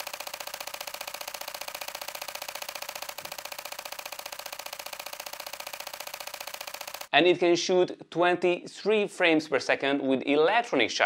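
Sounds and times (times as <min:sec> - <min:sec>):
camera shutter rapid clicking: 0:00.0 - 0:07.1.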